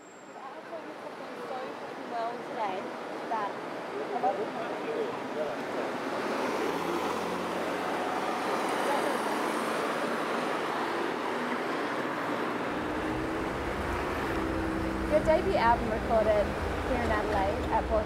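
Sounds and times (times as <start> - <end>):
car and road noise: 0.0 - 18.0.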